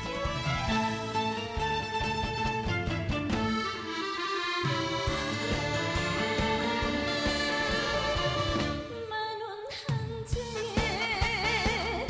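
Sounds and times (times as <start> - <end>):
band backing track with drums: 0.0 - 9.1, 9.9 - 12.0
woman singing with vibrato: 8.8 - 12.0.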